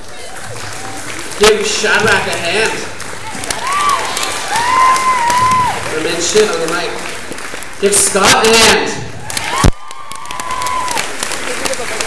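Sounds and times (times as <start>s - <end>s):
audience applauding and cheering: 0.0s - 12.0s
long high cheer: 3.4s - 6.1s, 9.2s - 12.0s.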